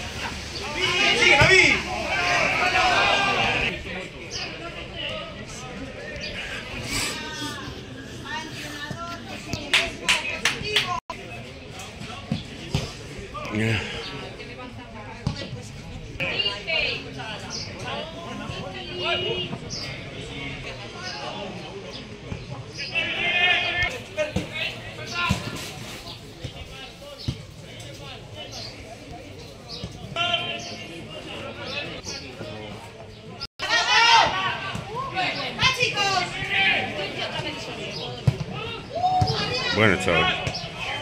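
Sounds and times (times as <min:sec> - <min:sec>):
distant shouted calls: 0:00.0 - 0:04.6, 0:22.8 - 0:25.6, 0:30.0 - 0:31.9
players calling: 0:00.0 - 0:15.6, 0:16.2 - 0:41.0
outdoor background noise: 0:00.0 - 0:41.0
loud high shout: 0:00.6 - 0:03.7, 0:33.6 - 0:36.9, 0:38.6 - 0:40.4.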